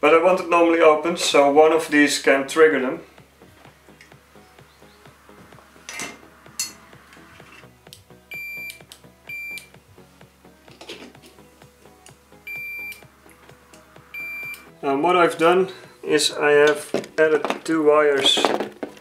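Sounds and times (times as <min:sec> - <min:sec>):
faint background music: 0:00.0 - 0:19.0
multimeter high beeps: 0:08.3 - 0:09.7, 0:12.4 - 0:13.0, 0:14.1 - 0:14.7.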